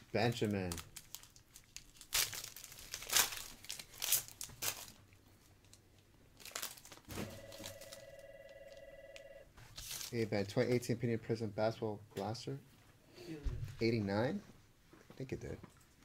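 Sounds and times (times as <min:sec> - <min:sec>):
foil wrapper tearing and crinkling: 0:00.2 - 0:05.8, 0:06.4 - 0:08.0, 0:09.7 - 0:10.2
phone buzzing tone: 0:07.1 - 0:09.5.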